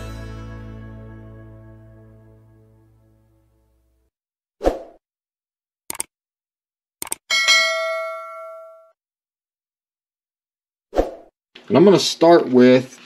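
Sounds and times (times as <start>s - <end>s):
background music: 0.0s - 4.0s
mouse clicks: 5.9s - 6.1s, 7.0s - 7.2s
notification bell ding: 7.3s - 9.0s.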